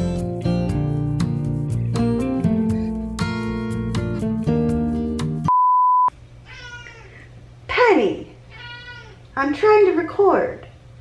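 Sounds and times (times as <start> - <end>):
music: 0.0 - 5.5
short steady beep: 5.5 - 6.1
cat meowing: 6.5 - 7.2, 8.5 - 9.2.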